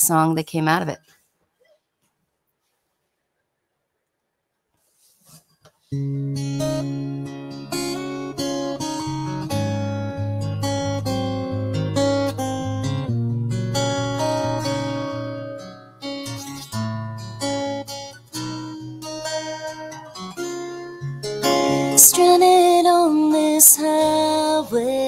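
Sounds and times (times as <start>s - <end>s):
acoustic guitar picking: 5.9s - 25.0s.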